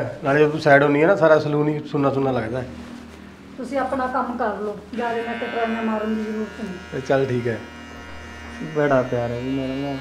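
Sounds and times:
electric beard trimmer buzzing: 0:04.9 - 0:10.0.

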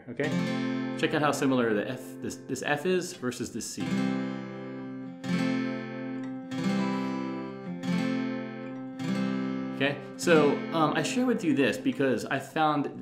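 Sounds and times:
acoustic guitar strumming chords: 0:00.2 - 0:12.2.

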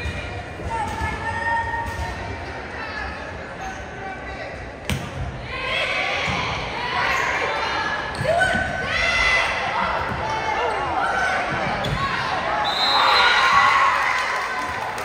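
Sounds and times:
spectators' voices echoing: 0:00.0 - 0:15.0.

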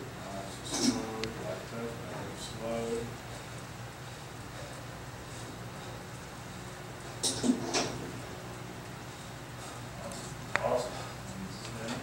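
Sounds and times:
electric fans humming: 0:00.0 - 0:12.0.

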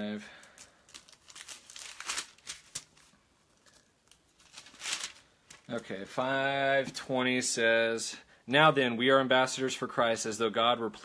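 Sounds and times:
paper rustling and crinkling: 0:00.5 - 0:06.0.

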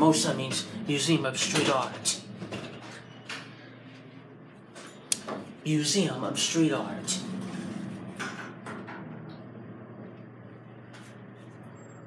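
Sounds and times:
elevator ride hum: 0:00.0 - 0:12.0.

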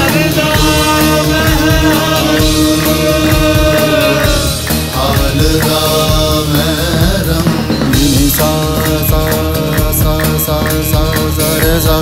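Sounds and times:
film song with drum beat: 0:00.0 - 0:12.0.

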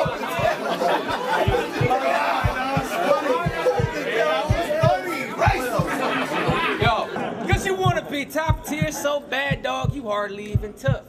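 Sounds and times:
crowd of voices talking: 0:00.0 - 0:10.8
kick drum beat: 0:00.0 - 0:11.0.

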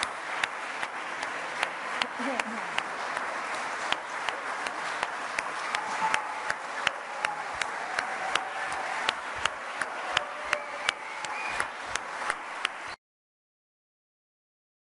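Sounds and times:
audience applauding: 0:00.0 - 0:13.0
sharp single hand claps: 0:03.9 - 0:12.8.

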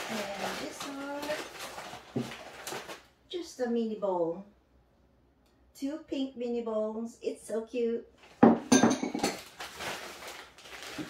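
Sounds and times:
ceramic bowls clinking: 0:08.5 - 0:09.4.

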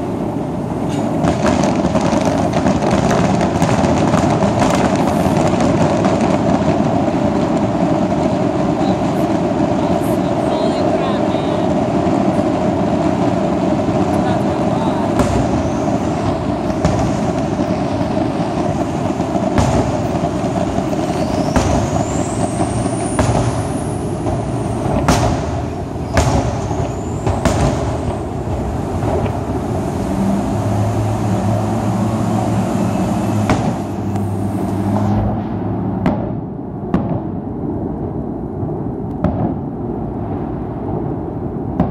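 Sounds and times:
fireworks exploding: 0:00.0 - 0:41.9
highway traffic noise: 0:00.0 - 0:41.9
low engine hum: 0:00.0 - 0:41.9
whistling firework shells: 0:00.9 - 0:30.6, 0:31.2 - 0:35.2.

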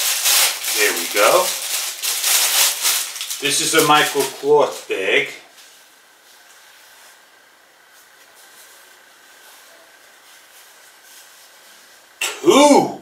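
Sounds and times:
faint steady hiss: 0:00.0 - 0:13.0.

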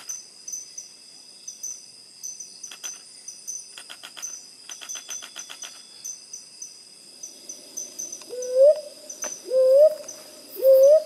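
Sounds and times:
insects droning: 0:00.0 - 0:11.0
bird whistled calls: 0:10.6 - 0:11.0.

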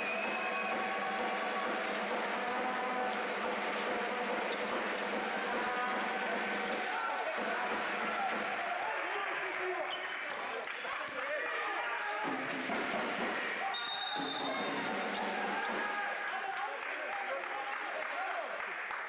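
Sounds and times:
referee's whistle: 0:13.6 - 0:15.3.

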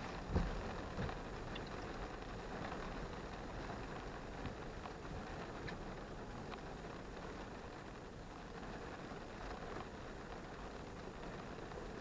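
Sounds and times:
raindrop taps: 0:00.0 - 0:03.0, 0:03.6 - 0:07.5
rain hiss on car: 0:00.0 - 0:12.0.

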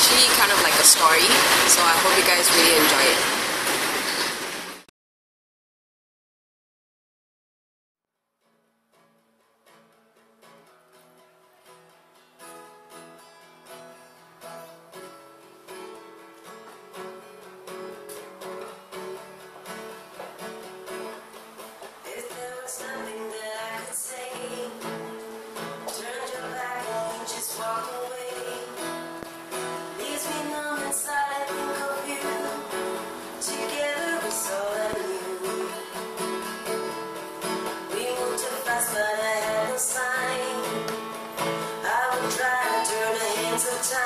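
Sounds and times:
acoustic guitar playing: 0:00.0 - 0:04.8, 0:08.4 - 0:44.0
woman singing: 0:22.0 - 0:36.5, 0:37.7 - 0:44.0.

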